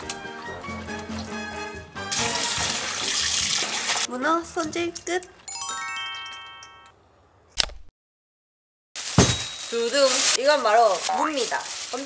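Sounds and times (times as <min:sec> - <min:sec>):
rising bell-like chime tones: 0:05.5 - 0:07.0
sharp click: 0:07.5 - 0:07.9.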